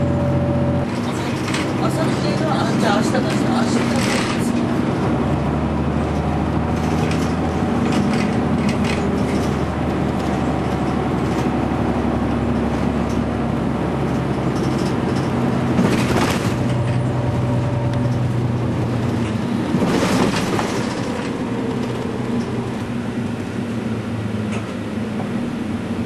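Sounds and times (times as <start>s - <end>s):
bus engine hum: 0.0s - 26.0s
tyre and road noise: 0.0s - 26.0s.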